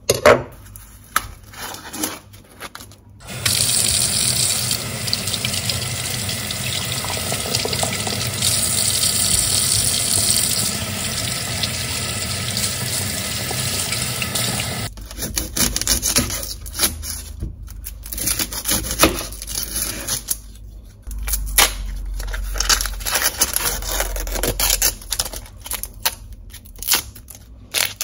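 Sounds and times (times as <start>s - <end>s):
kitchen tap running: 3.2s - 14.9s.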